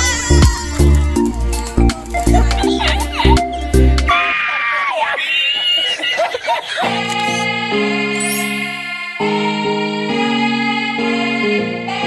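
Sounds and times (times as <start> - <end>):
man squealing laughter: 2.8 - 7.4.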